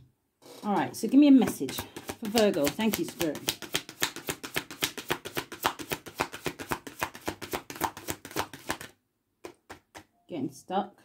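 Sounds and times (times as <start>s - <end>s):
cards being shuffled: 0.9s - 8.9s.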